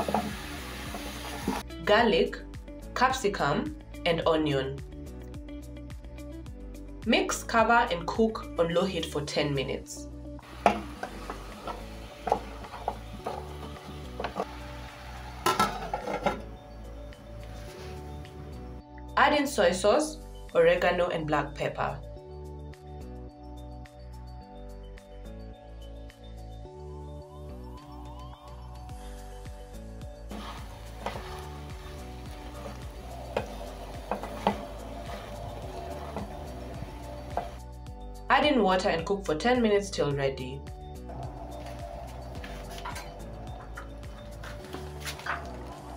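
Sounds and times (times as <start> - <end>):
background music: 0.0 - 45.9
spoon stirring in metal pot: 10.5 - 14.8, 30.3 - 37.6, 41.5 - 45.9
lid clattering onto metal pot: 15.4 - 16.5.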